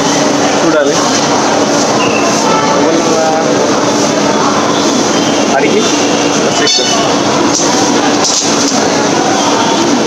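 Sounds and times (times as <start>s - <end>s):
faint voices of people: 0.0s - 10.0s
train noise with low hum: 0.0s - 10.0s.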